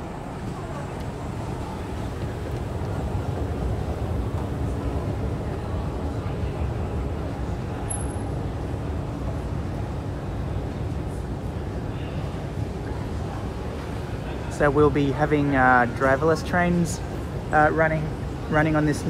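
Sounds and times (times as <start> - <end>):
faint chatter of people: 0.0 - 19.0.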